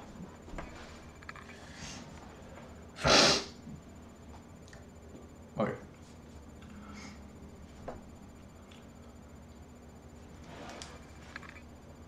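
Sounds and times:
sneeze: 3.0s - 3.6s.

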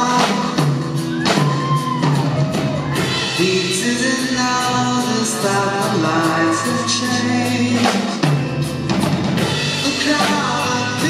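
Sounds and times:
drum kit hitting hard: 0.0s - 11.0s
rock band playing: 0.0s - 11.0s.

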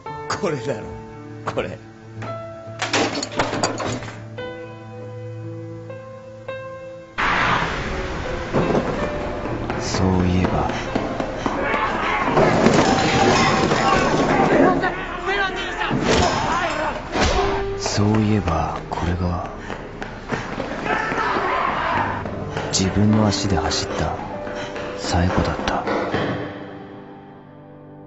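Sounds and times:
steady rushing rumble: 7.2s - 12.8s
running footsteps on pavement: 8.7s - 12.5s, 17.5s - 25.8s
people shouting angrily: 11.4s - 17.6s, 20.7s - 22.3s.

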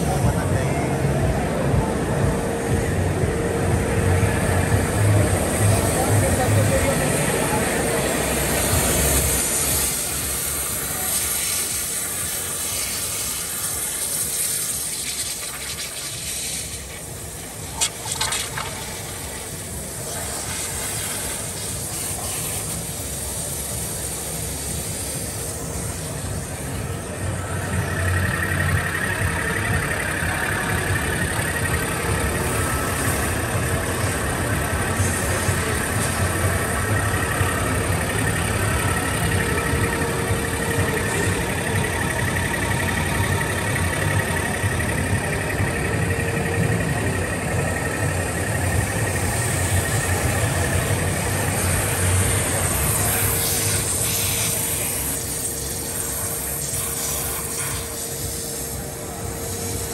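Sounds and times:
machine drone with high whine: 0.0s - 59.9s
waterjet hiss: 4.4s - 45.6s, 47.4s - 59.9s.

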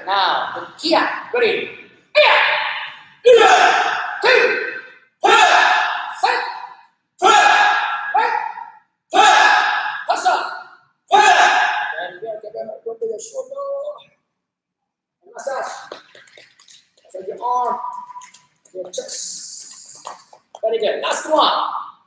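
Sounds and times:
students shouting in unison: 2.2s - 6.5s, 7.2s - 8.4s, 9.1s - 10.2s, 11.1s - 12.0s.

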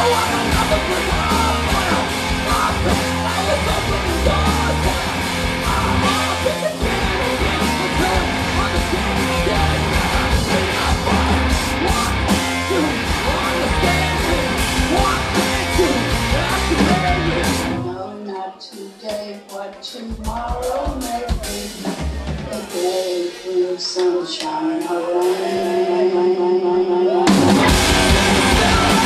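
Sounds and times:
distorted electric guitar: 0.0s - 18.0s, 21.3s - 29.0s
drum kit: 0.0s - 18.0s, 18.8s - 26.2s, 27.2s - 29.0s.

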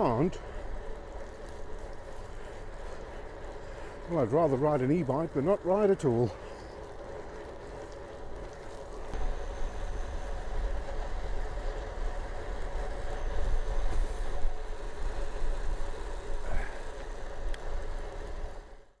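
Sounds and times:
bicycle tyres on wet tarmac: 0.0s - 19.0s.

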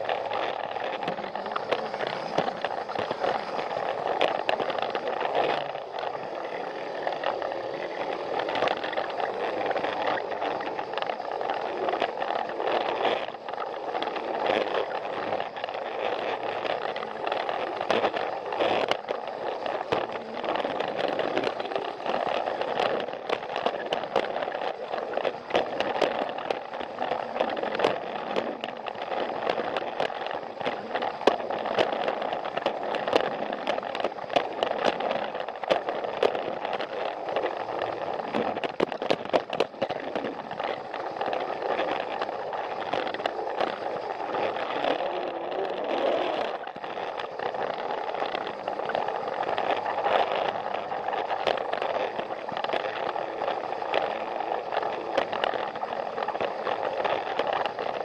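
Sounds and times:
toy train motor whirring: 0.0s - 58.0s
wheels clicking and rattling on track: 0.0s - 58.0s.

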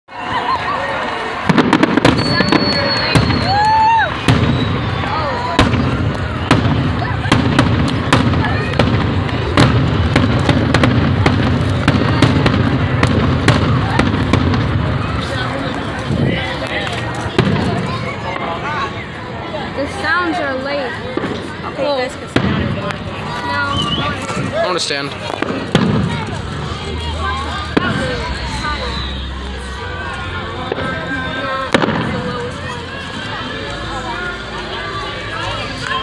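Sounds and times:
fireworks bangs and crackles: 1.0s - 36.0s.

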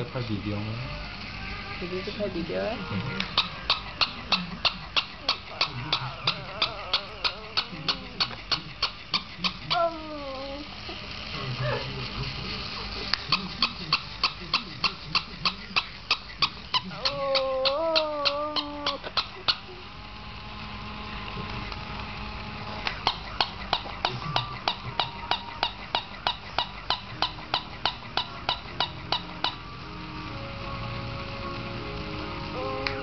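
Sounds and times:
dog whining: 0.9s - 10.8s, 16.5s - 19.6s
rapid sharp tapping: 3.2s - 9.7s, 22.9s - 29.7s.

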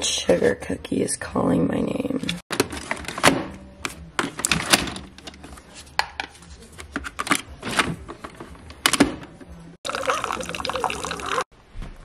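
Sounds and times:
coffee pouring into a mug: 9.9s - 11.5s.

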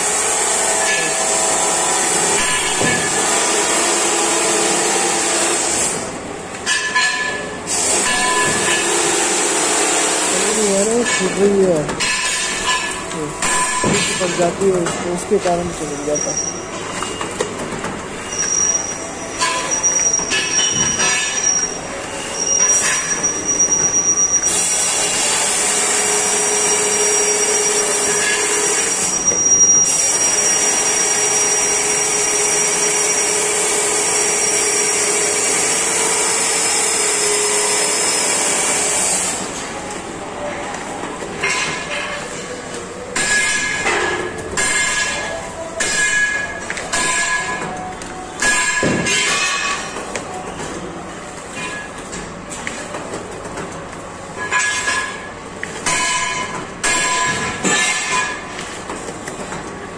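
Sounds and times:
machine hissing with high tone: 18.2s - 39.6s.

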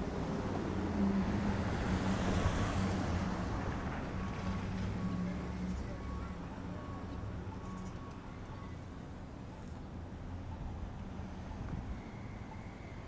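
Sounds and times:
road traffic rumbling: 0.0s - 13.0s.

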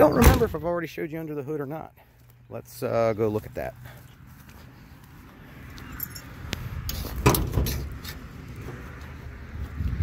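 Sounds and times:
car hood latch clicks and rattle: 7.2s - 8.0s.

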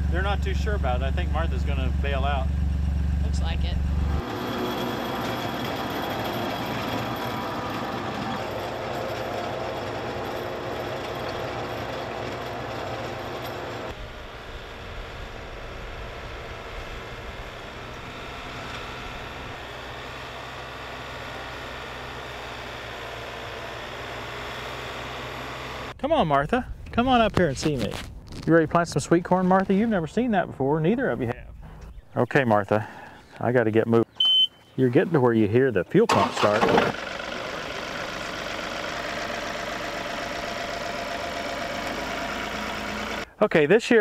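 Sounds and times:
tractor diesel engine running: 0.0s - 26.0s, 35.6s - 43.4s.

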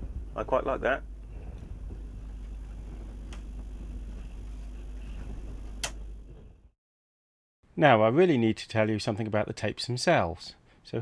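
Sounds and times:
low background hum: 0.0s - 6.7s.

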